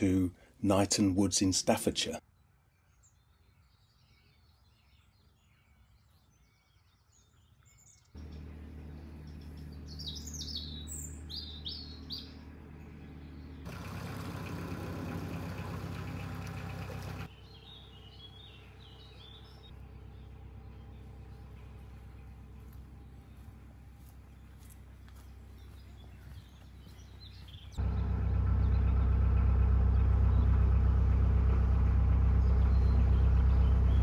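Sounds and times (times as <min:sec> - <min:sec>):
small birds chirping: 0:01.8 - 0:30.9, 0:32.2 - 0:34.0
diesel engine humming: 0:08.2 - 0:34.0.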